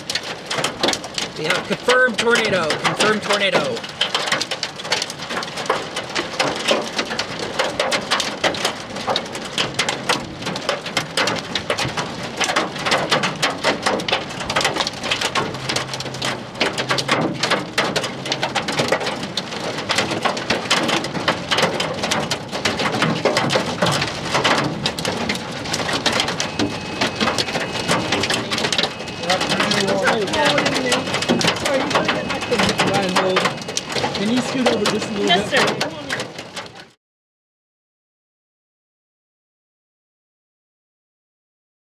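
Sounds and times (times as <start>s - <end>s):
heavy rain pattering: 0.0s - 37.0s.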